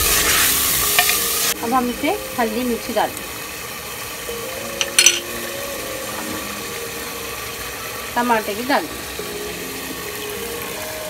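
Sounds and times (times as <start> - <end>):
meat sizzling in oil: 0.0 - 11.0
spatula tapping a pot: 4.8 - 5.3.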